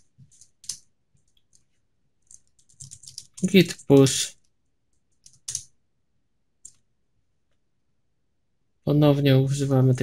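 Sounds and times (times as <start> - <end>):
keyboard keys clicking: 2.2 - 4.2, 4.9 - 5.7.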